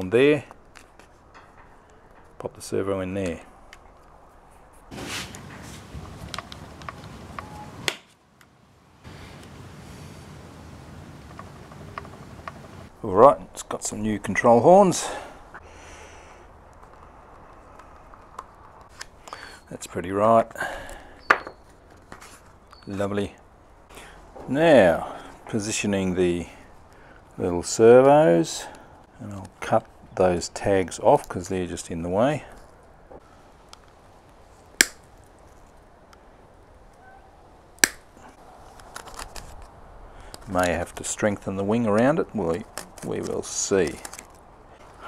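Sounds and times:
low room noise: 0:00.0 - 0:45.0
sharp plastic snaps: 0:34.7 - 0:35.3, 0:37.8 - 0:38.2.

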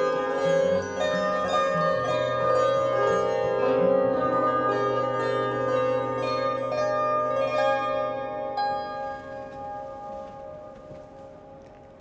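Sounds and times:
lyre plucked strings ringing: 0:00.0 - 0:12.0.

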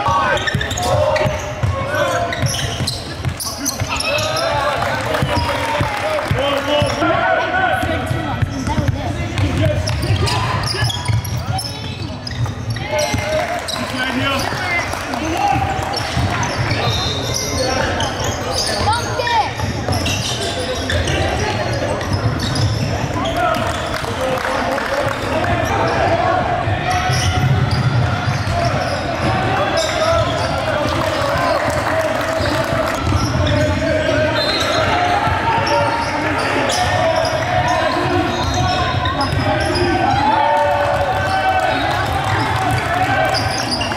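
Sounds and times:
basketball bouncing on court: 0:00.0 - 0:07.0, 0:07.8 - 0:17.3, 0:27.0 - 0:43.9
indistinct voices: 0:00.0 - 0:43.9.

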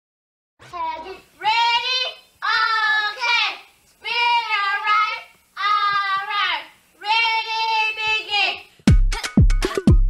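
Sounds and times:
dance beat with kick drums: 0:08.8 - 0:10.0.

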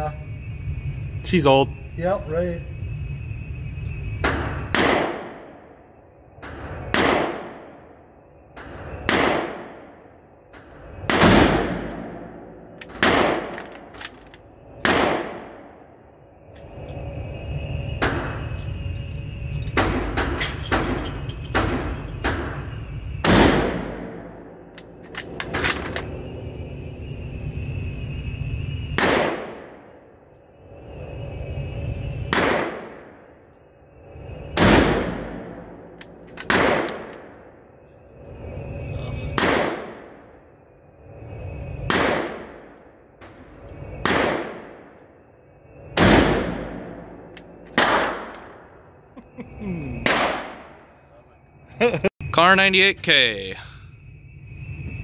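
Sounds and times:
steady low hum: 0:00.0 - 0:55.0
gunshots echoing indoors: 0:04.2 - 0:05.8, 0:06.4 - 0:08.0, 0:08.6 - 0:14.0, 0:14.8 - 0:15.9, 0:23.2 - 0:24.7, 0:29.0 - 0:30.0, 0:32.3 - 0:33.2, 0:34.5 - 0:37.5, 0:39.3 - 0:40.4, 0:41.8 - 0:43.4, 0:44.0 - 0:45.0, 0:45.9 - 0:48.7, 0:50.0 - 0:50.9.

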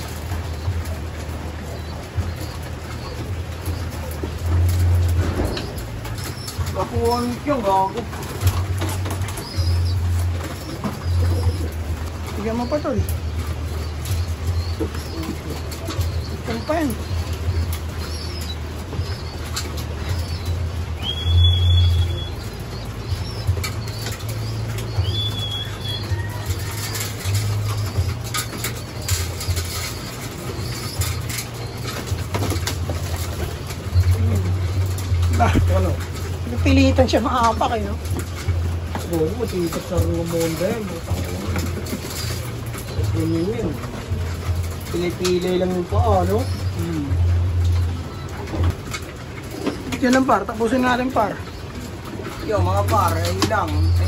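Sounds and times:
beaks pecking seed: 0:00.0 - 0:54.0
pigeons cooing: 0:00.0 - 0:54.0.

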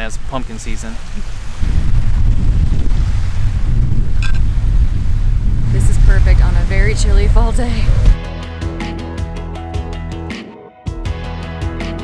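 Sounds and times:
wind buffeting microphone: 0:00.0 - 0:08.2.

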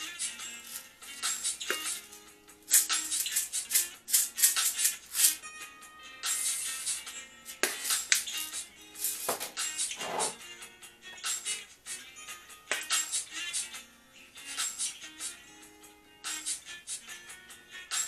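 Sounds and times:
music playing: 0:00.0 - 0:18.0
pepper jar rattling: 0:02.7 - 0:05.4.

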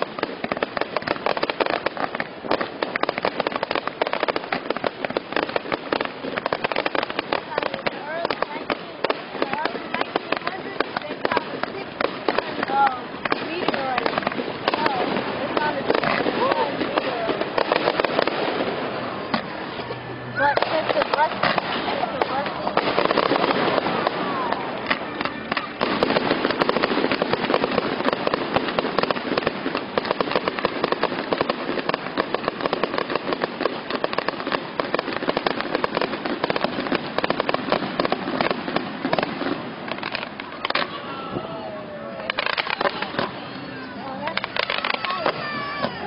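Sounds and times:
fireworks crackling: 0:00.0 - 0:46.0
voices of onlookers: 0:05.1 - 0:46.0.

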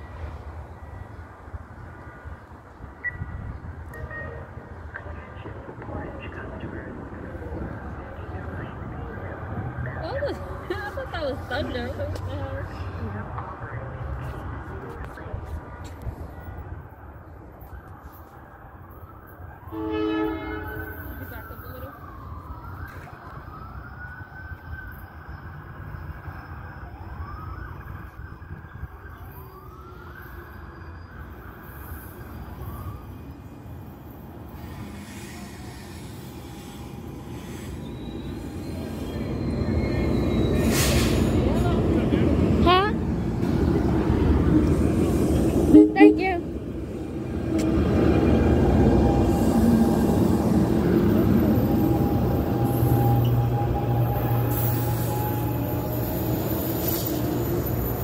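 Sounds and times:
distant siren wailing: 0:00.0 - 0:15.4, 0:16.2 - 0:58.0
train rumbling past: 0:00.0 - 0:17.5, 0:31.2 - 0:58.0
train horn blasts: 0:19.6 - 0:21.1, 0:45.6 - 0:46.5.

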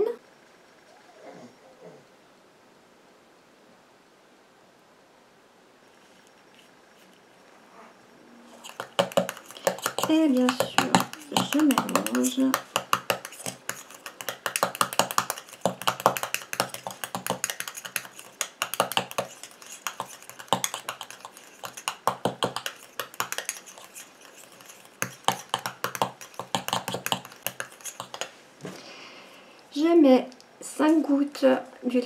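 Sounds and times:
spatula scraping metal bowl: 0:08.5 - 0:28.3.

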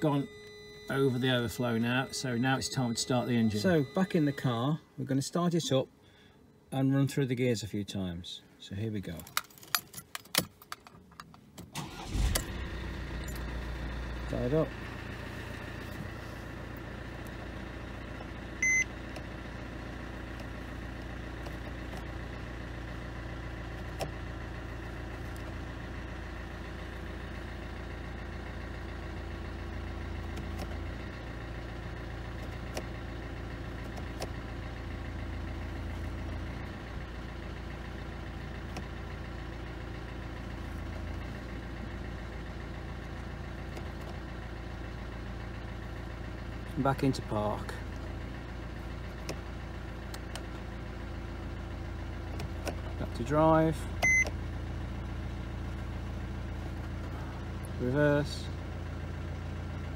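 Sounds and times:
short electronic beep: 0:00.0 - 0:04.7, 0:18.6 - 0:18.9, 0:54.0 - 0:54.3
car engine idling: 0:00.0 - 0:06.7, 0:09.5 - 0:59.9.

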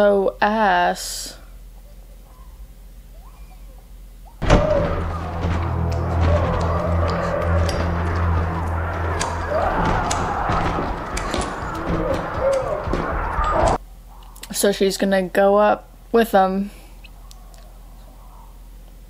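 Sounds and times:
dark music: 0:04.4 - 0:13.8
low steady drone: 0:04.4 - 0:13.8.

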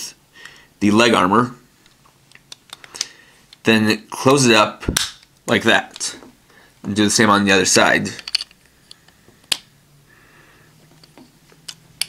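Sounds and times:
plastic toy parts clicking: 0:08.2 - 0:09.7.

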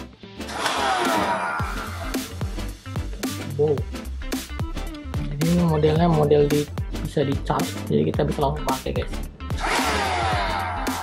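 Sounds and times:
electronic background music: 0:00.0 - 0:11.0.

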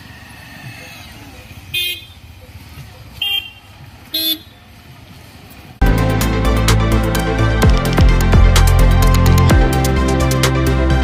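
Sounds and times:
road noise: 0:00.0 - 0:11.0
vehicle horn honks: 0:01.7 - 0:02.2, 0:03.2 - 0:04.6
loud electronic music: 0:05.8 - 0:11.0.

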